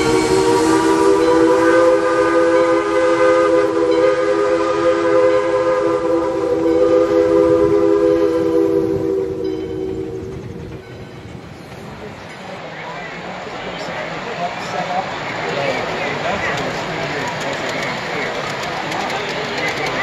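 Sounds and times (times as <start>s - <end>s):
train horn chord: 0.0s - 10.8s
train running noise: 0.0s - 20.0s.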